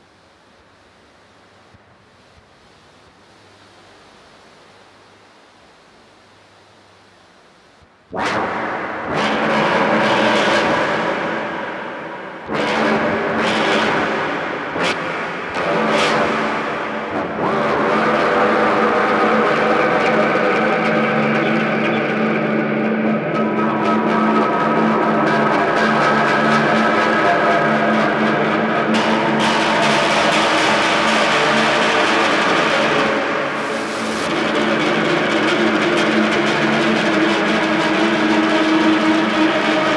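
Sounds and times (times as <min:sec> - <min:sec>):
low drone: 0:08.2 - 0:39.9
grinding noise texture: 0:24.3 - 0:39.9.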